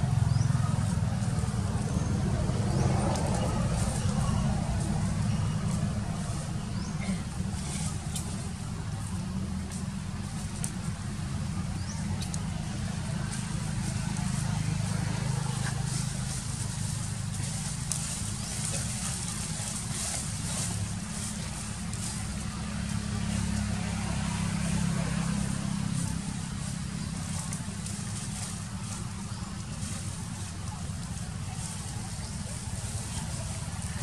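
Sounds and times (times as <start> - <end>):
faint clicks: 12.1 - 12.6.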